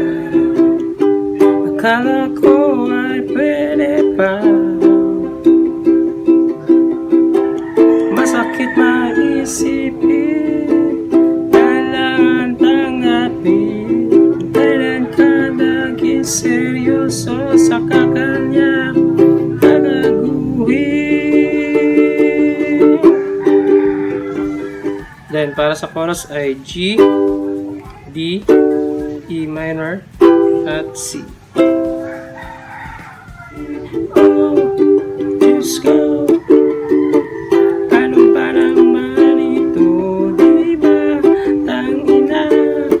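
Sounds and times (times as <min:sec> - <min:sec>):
person singing: 0:00.0 - 0:43.0
ukulele strumming: 0:00.0 - 0:43.0.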